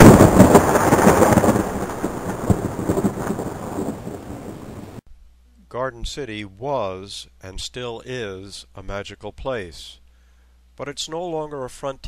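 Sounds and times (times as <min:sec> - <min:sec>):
thunder rolling and crackling: 0:00.0 - 0:05.0.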